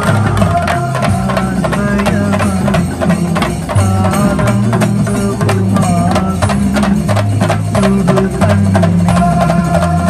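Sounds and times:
drums beaten with sticks: 0.0 - 10.0.

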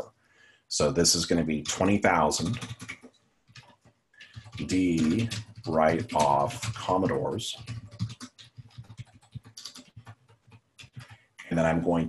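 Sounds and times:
computer keyboard typing: 1.5 - 12.0.

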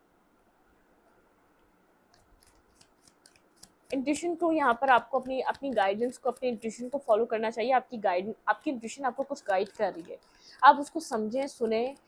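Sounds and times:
cards rustling and clicking: 2.1 - 7.2, 9.2 - 12.0.

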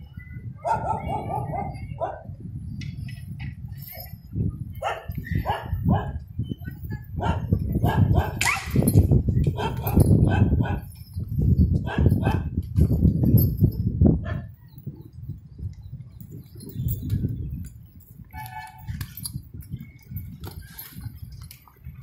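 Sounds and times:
dogs barking: 0.6 - 2.3, 4.8 - 6.2, 7.2 - 8.7, 9.5 - 10.9, 11.8 - 12.5, 14.2 - 14.5.

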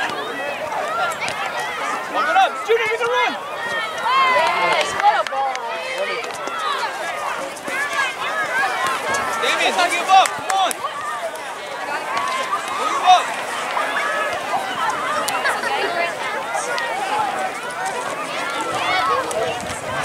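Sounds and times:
crowd shouting and calling: 0.0 - 20.0.

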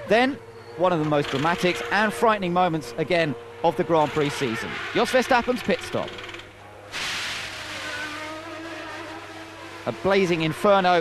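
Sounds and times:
faint engine tones: 0.0 - 11.0
rush of igniting fuel: 6.9 - 8.1.

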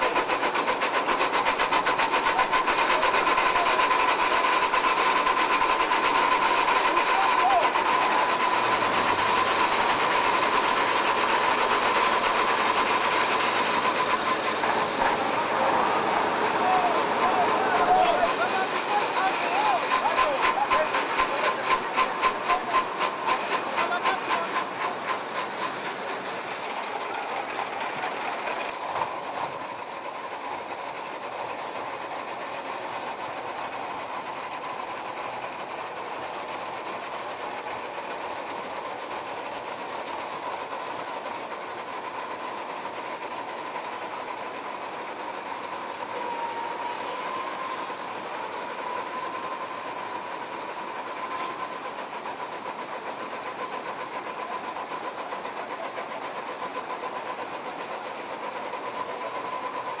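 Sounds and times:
heavy truck engines running: 0.0 - 60.0.

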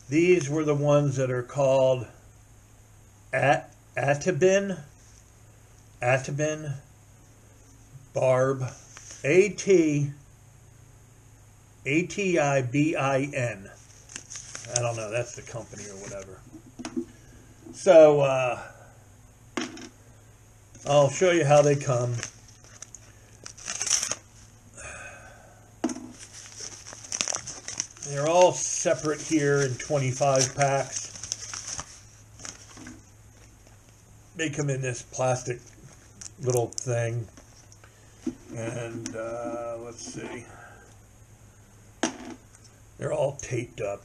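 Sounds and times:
faint handling noise: 13.7 - 17.9, 25.8 - 34.1, 35.5 - 41.0
paper envelopes crinkling: 13.8 - 16.4, 20.8 - 24.6, 26.1 - 34.0.

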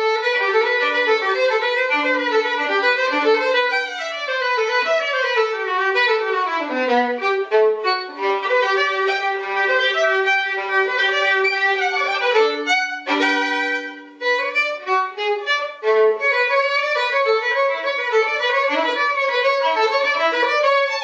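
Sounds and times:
solo violin playing: 0.0 - 21.0.

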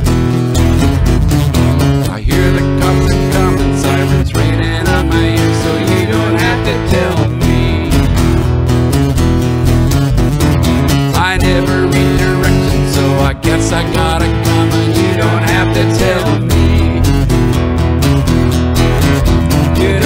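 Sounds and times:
acoustic guitar strumming: 0.0 - 20.0
electric bass guitar: 0.0 - 20.0.

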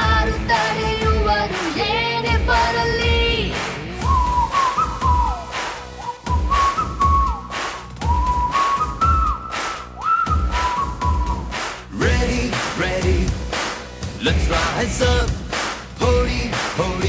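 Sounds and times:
pop drum beat: 0.0 - 17.0
whistled melody: 0.8 - 1.6, 4.0 - 12.3.

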